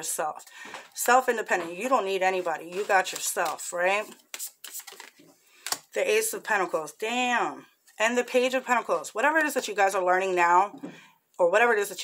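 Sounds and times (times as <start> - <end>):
cards clicking and slapping: 2.7 - 5.9.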